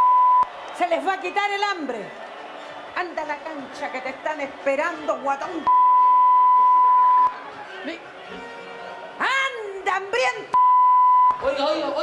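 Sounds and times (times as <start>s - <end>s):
censor bleep: 0.0s - 0.5s, 5.7s - 7.3s, 10.6s - 11.4s.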